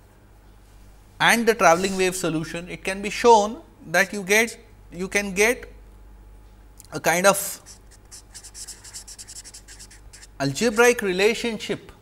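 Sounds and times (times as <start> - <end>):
marker pen scratching on paper: 7.5 - 10.8.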